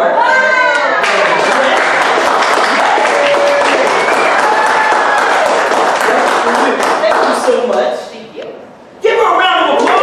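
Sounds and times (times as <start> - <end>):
audience applauding: 0.8 - 7.8.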